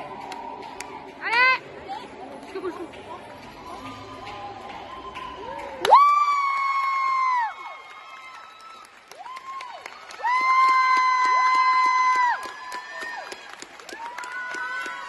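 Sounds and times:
crowd cheering and clapping: 0.0 - 1.8, 3.3 - 15.0.

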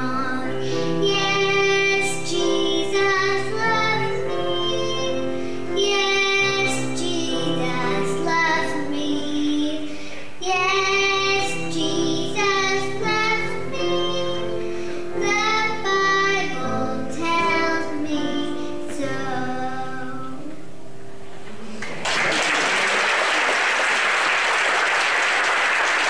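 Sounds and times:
boy singing into a microphone: 0.0 - 20.6.

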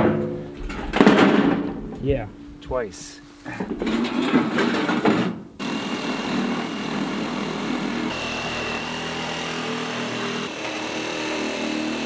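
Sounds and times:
corrugated metal sheet clattering: 0.0 - 2.5, 3.5 - 5.4.

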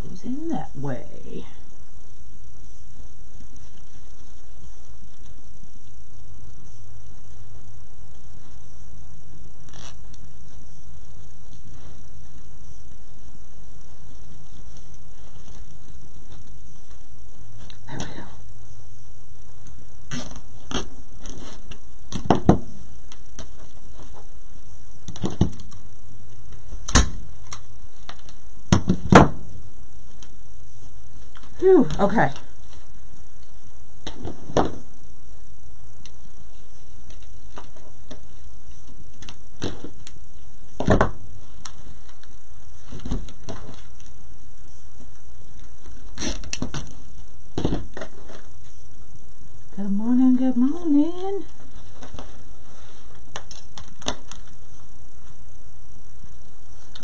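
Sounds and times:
steady background hiss: 0.0 - 57.0.

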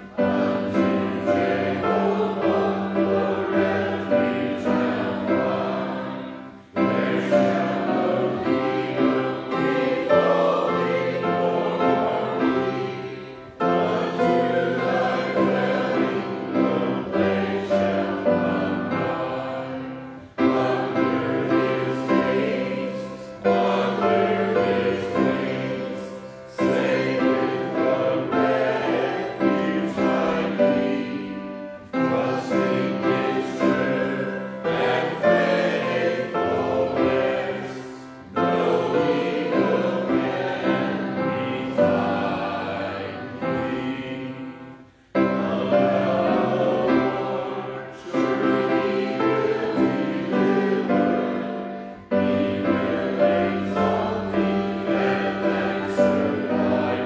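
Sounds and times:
congregation singing a hymn: 0.0 - 57.0.

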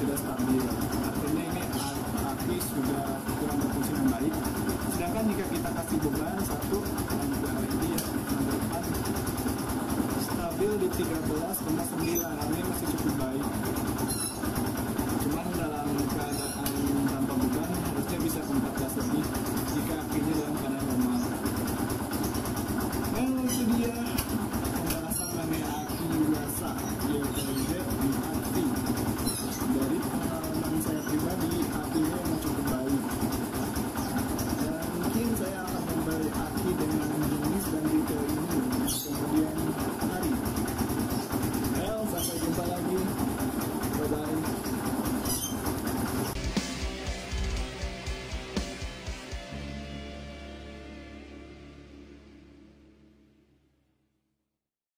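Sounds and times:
motorcycle engine running: 0.0 - 53.4.

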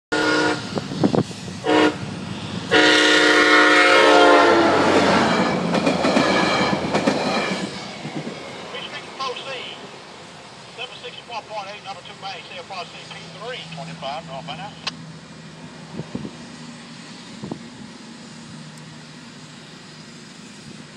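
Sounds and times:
train horn blasts: 0.1 - 1.0, 1.6 - 2.1, 2.7 - 7.7
train rumble and clatter on rails: 0.1 - 20.9.

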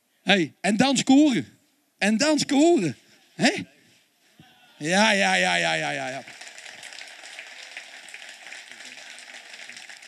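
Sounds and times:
audience applauding: 5.2 - 10.0.

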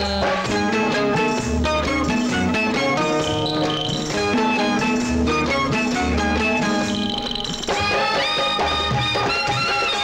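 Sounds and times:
instrumental film song band: 0.0 - 10.0.

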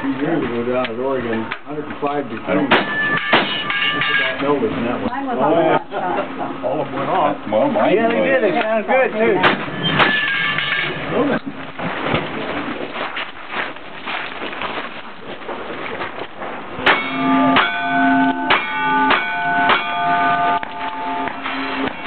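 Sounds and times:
steel target ringing: 2.7 - 4.6, 9.4 - 11.1, 16.8 - 22.0.

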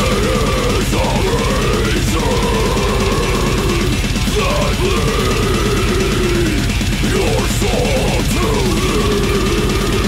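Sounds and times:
fast dense drumming: 0.0 - 10.0
harsh screamed vocal: 0.0 - 10.0
heavy metal instruments: 0.0 - 10.0.

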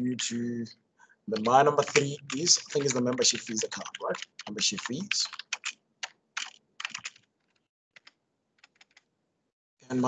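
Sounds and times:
typing on computer keyboard: 1.4 - 9.1.

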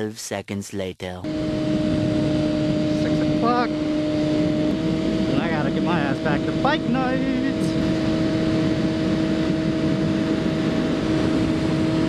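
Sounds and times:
motorcycle engine cruising: 1.2 - 12.0
wind noise: 1.2 - 12.0.

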